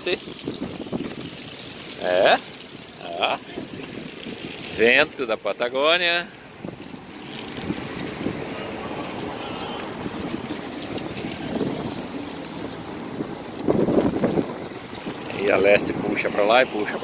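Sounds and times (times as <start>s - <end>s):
wind on microphone: 0.0s - 1.5s, 6.6s - 17.0s.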